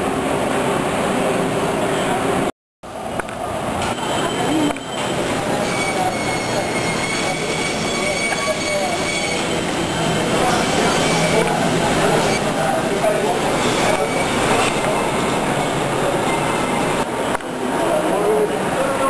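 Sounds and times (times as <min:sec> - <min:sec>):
rumbling street traffic: 0:00.0 - 0:19.0
market hubbub of voices: 0:00.9 - 0:19.0.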